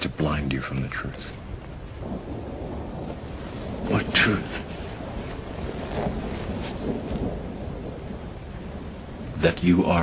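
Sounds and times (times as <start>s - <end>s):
rain hissing: 0.0s - 10.0s
thunder rumbling: 0.0s - 10.0s.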